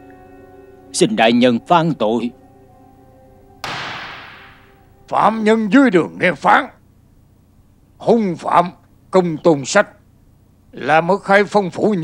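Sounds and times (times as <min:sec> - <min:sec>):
sharp dramatic crash: 0:03.6 - 0:04.8.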